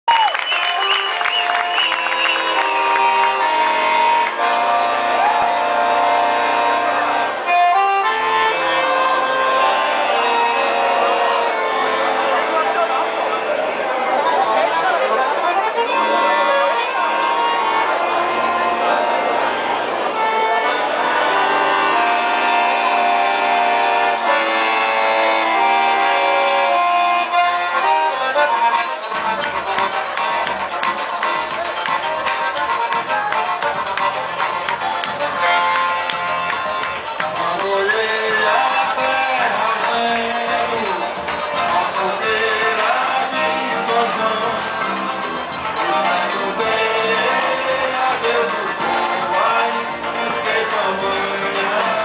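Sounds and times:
crowd whooping and cheering: 0.0 - 3.2
live band playing: 0.1 - 52.0
accordion playing held chords: 0.2 - 52.0.

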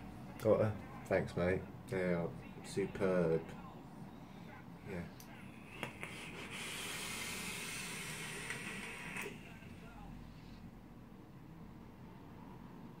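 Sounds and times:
vape hiss of air drawn: 5.8 - 9.6
breathy exhale: 6.0 - 9.3.

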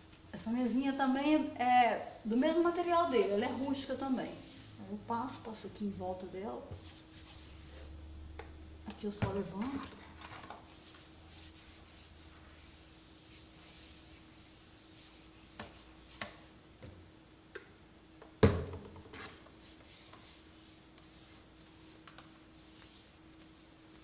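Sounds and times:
cloth rubbing on wooden table: 1.3 - 8.0, 9.3 - 16.7, 19.3 - 24.0.

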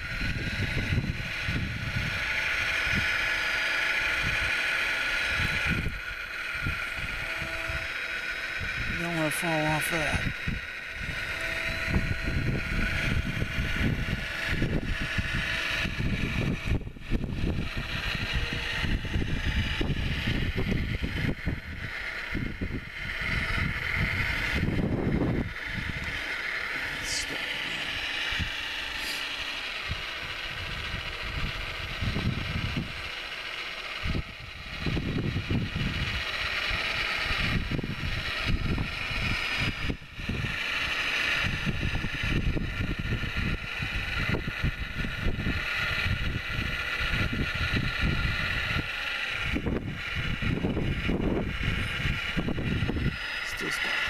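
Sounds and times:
wind buffeting microphone: 0.0 - 9.1, 10.0 - 29.1, 29.7 - 54.0
hydraulic pump and motors whining: 0.0 - 54.0.

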